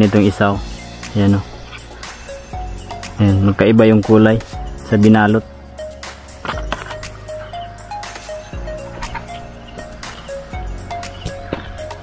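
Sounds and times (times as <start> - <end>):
clicks and rustles: 6.4 - 11.8.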